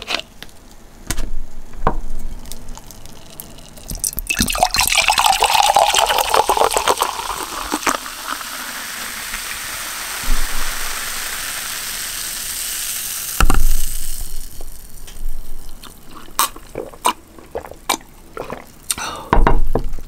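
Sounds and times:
drink pouring into glass: 2.7s - 14.9s
bubbles fizzing: 2.8s - 18.9s.

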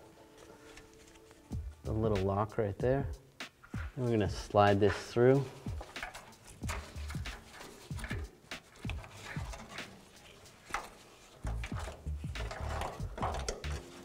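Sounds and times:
plastic scraping against metal: 3.6s - 14.0s.

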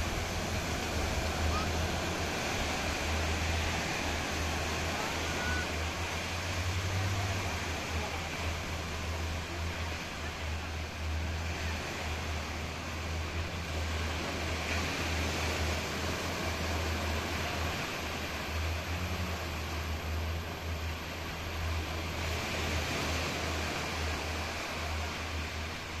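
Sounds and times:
low rumble: 0.0s - 7.9s
small waves washing on sand: 0.0s - 26.0s.

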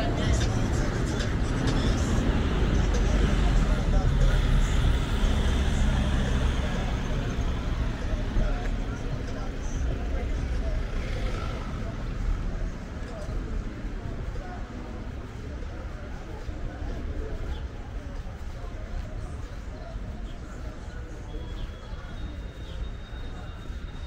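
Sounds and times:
people's voices: 0.0s - 24.0s
traffic rumble: 0.0s - 24.0s.

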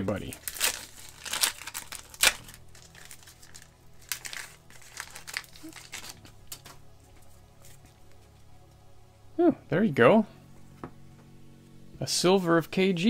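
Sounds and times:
foil wrapper crinkling: 0.0s - 8.4s.

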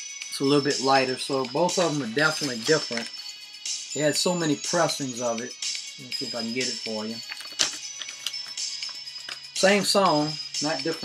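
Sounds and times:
background music: 0.0s - 11.0s
vinyl record sleeve clicks and rustles: 7.2s - 9.4s.

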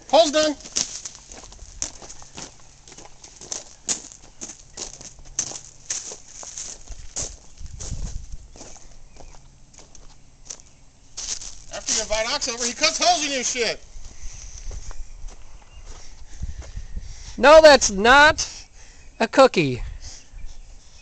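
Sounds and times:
footsteps outdoors: 0.0s - 17.3s.

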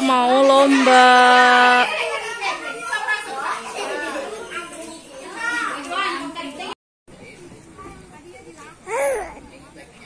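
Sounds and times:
young children talking and calling out: 1.8s - 10.0s.

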